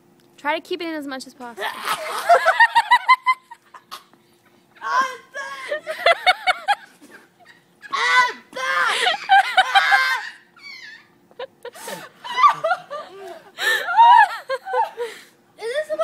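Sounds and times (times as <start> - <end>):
young people laughing: 1.6 - 4.0, 4.8 - 15.3.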